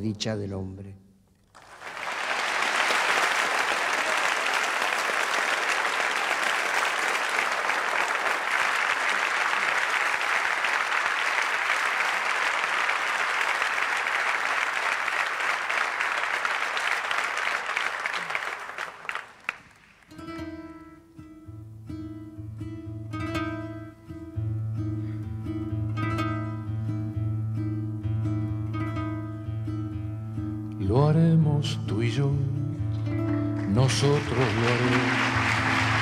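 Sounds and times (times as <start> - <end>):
audience applauding: 1.5 - 20.1, 33.5 - 36.0.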